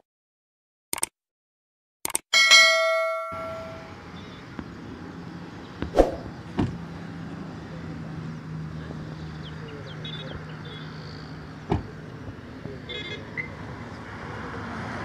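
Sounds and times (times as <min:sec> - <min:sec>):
bright bell ding: 0:02.4 - 0:04.0.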